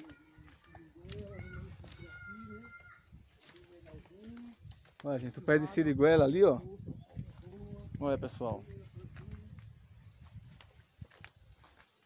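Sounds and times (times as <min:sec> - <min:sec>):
footsteps on rough ground: 0:00.0 - 0:12.0.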